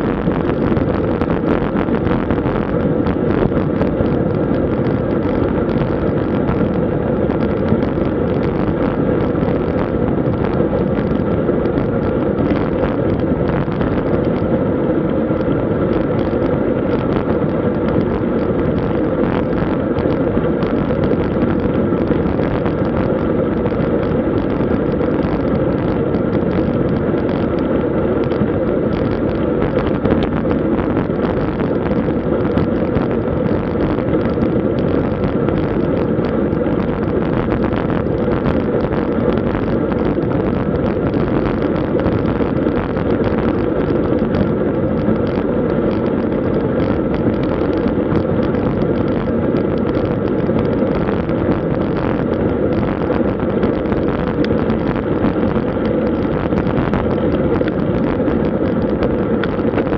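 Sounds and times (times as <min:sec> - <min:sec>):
wind rushing over microphone: 0:00.0 - 0:59.9.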